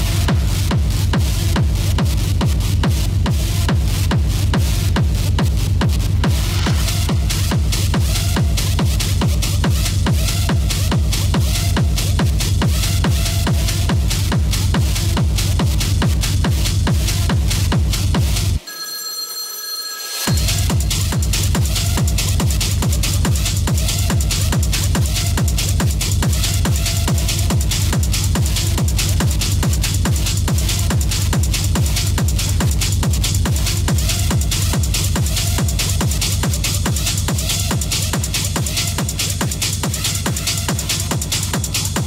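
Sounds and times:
kick drum and heavy bass: 0.0s - 18.6s, 20.3s - 42.0s
techno music: 0.0s - 18.7s, 20.3s - 42.0s
high ringing tone: 18.6s - 20.9s.

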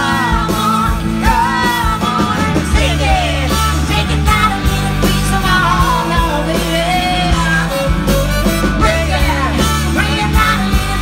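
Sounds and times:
pop-rock band playing: 0.0s - 11.0s
wavering melodic lead line: 0.0s - 11.0s.

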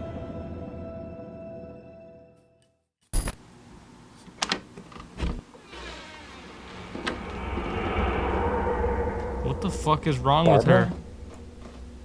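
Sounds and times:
low drone: 6.3s - 12.0s
steady hum: 6.5s - 12.0s.

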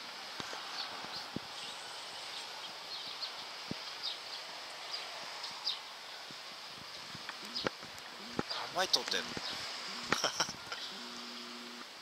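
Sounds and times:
steady outdoor hush: 0.0s - 12.0s.

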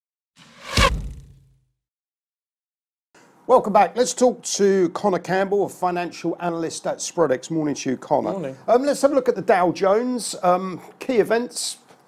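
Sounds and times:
whoosh sound effect: 0.4s - 1.5s.

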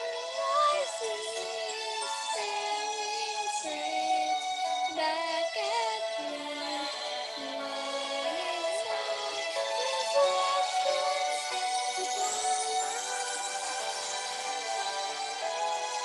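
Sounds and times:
girl singing: 0.0s - 13.4s
karaoke backing music: 0.0s - 16.0s.

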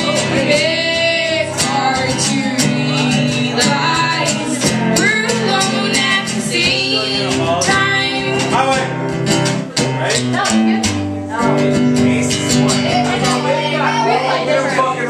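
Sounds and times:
women singing together: 0.0s - 8.3s
acoustic guitar: 0.0s - 15.0s.

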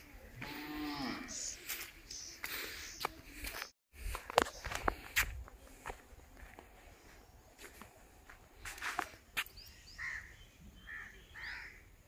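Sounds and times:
footsteps on bare rock: 1.6s - 9.6s.

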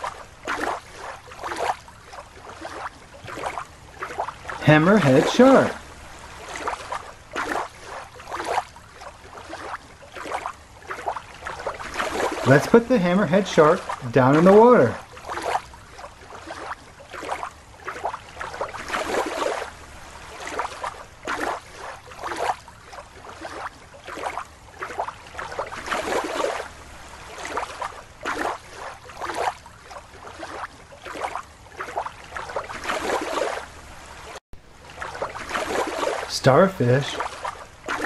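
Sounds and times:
water splashing and sloshing: 0.0s - 38.0s.

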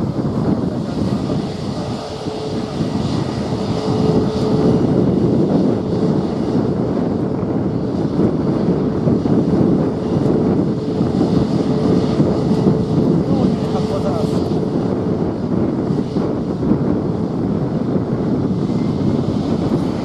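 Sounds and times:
jet engines rumbling: 0.0s - 20.0s.

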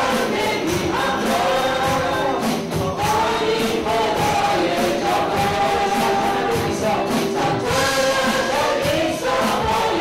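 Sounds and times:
band percussion beat: 0.0s - 10.0s
man and woman singing: 0.0s - 10.0s.

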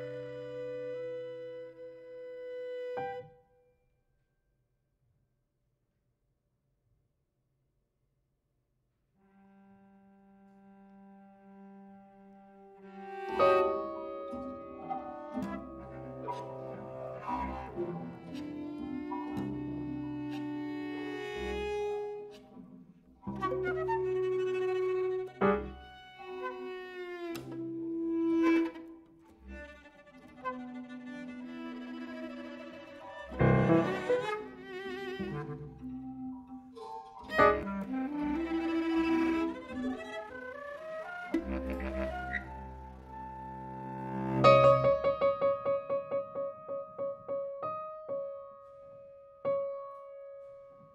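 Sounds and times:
bowed string concert music: 0.0s - 3.3s, 9.4s - 45.4s.

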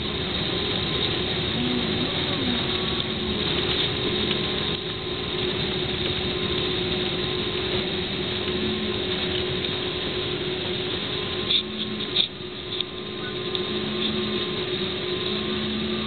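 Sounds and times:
airliner cabin engine rush: 0.0s - 16.0s
low steady hum: 0.0s - 16.0s.

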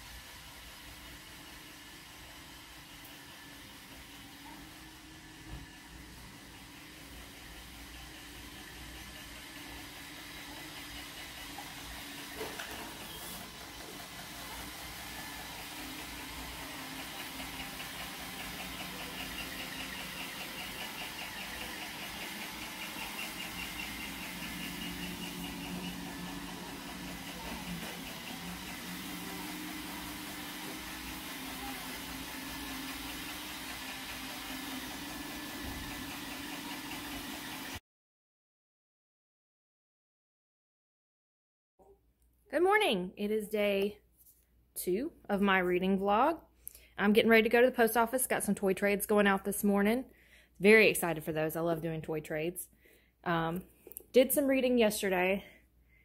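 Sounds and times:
fast fine whirring: 0.0s - 37.8s
small motor humming: 0.7s - 37.8s.

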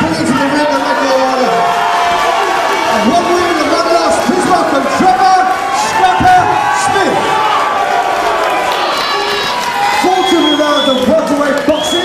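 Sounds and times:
man speaking over loudspeaker: 0.0s - 1.8s, 2.8s - 7.4s, 10.0s - 12.0s
crowd cheering and shouting: 0.0s - 12.0s.

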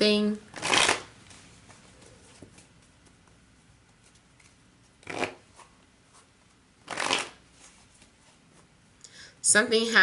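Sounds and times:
cards being shuffled: 0.5s - 8.2s.

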